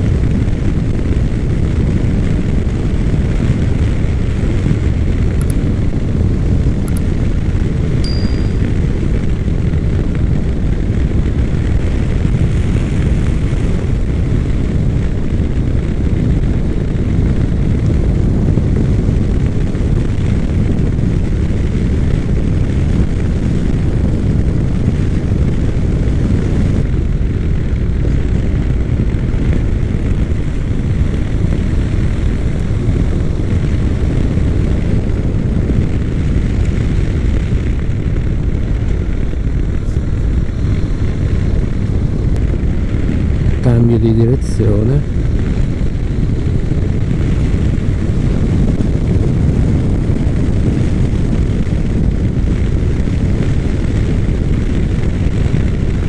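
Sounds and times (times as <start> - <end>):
wind rush on microphone: 0.0 - 56.0
motorcycle engine running: 0.3 - 43.6.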